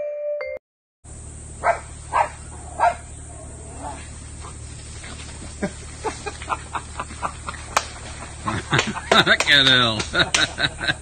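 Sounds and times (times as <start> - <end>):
steady low rumble: 1.1 - 11.0
small dog barking: 1.6 - 3.1.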